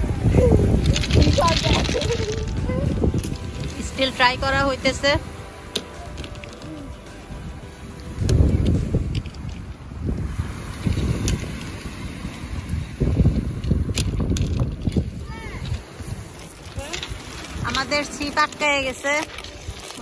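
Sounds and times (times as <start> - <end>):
waves washing on shingle: 0.0 - 20.0
wind buffeting microphone: 0.0 - 20.0.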